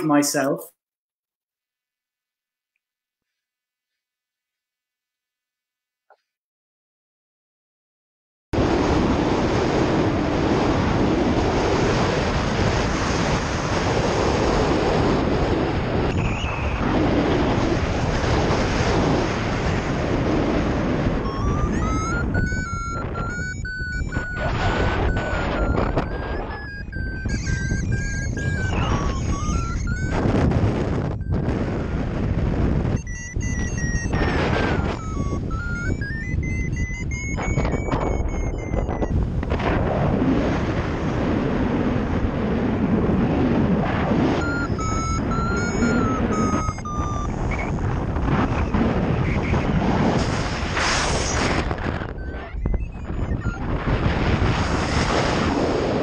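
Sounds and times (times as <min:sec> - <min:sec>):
wind buffeting microphone: 0:08.6 - 0:56.0
high whistle-like sliding tone: 0:21.3 - 0:30.5, 0:32.9 - 0:39.1, 0:44.4 - 0:47.7, 0:50.2 - 0:53.7.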